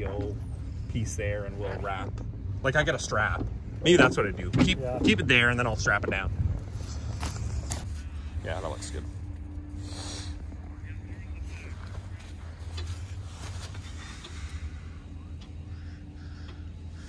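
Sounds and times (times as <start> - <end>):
faint hum: 0.0 - 17.0
pickup truck engine idling: 0.0 - 17.0.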